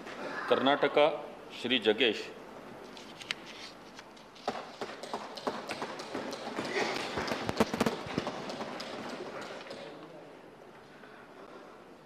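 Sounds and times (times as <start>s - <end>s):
people thumping wooden desks: 4.5s - 10.0s.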